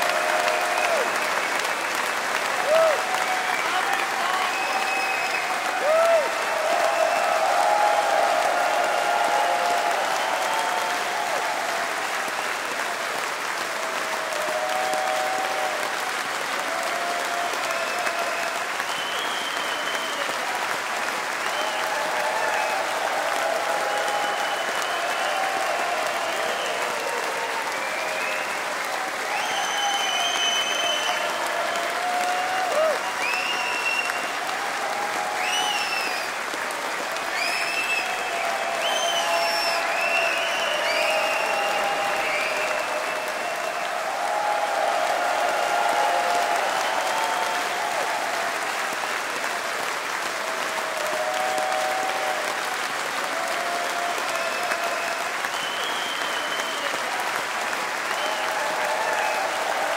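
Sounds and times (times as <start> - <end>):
audience applauding: 0.0 - 59.9
people cheering: 0.0 - 59.9
short high whistles: 55.5 - 57.0.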